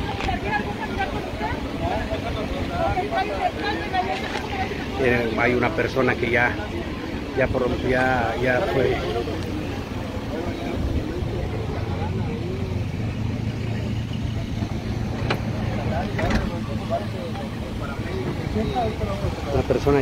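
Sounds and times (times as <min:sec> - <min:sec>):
faint voices: 0:00.0 - 0:20.0
vehicle engine idling: 0:00.0 - 0:20.0.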